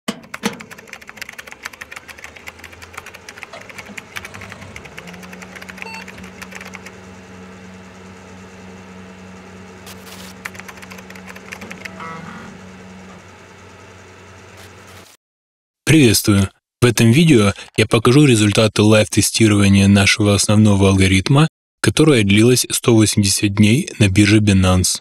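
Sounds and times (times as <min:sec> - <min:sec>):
rapid electronic clicking: 0:00.2 - 0:07.0, 0:10.4 - 0:12.0.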